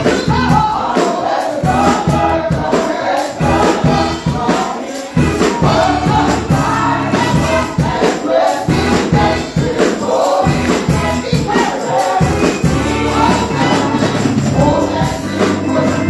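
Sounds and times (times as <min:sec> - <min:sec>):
group singing gospel: 0:00.0 - 0:16.0
instrumental accompaniment with beat: 0:00.0 - 0:16.0.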